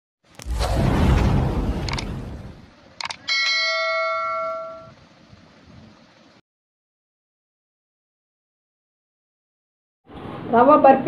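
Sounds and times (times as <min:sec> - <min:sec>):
boom: 0:00.4 - 0:02.7
bright bell ding: 0:03.3 - 0:04.9.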